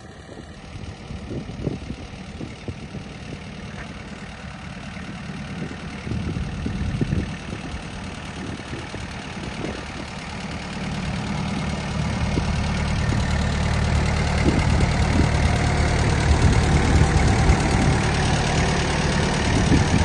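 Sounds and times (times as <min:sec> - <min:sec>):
tractor engine droning: 0:00.0 - 0:20.0.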